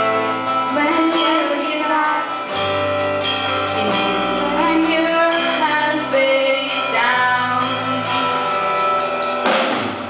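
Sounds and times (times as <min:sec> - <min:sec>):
live band with guitar: 0:00.0 - 0:10.0.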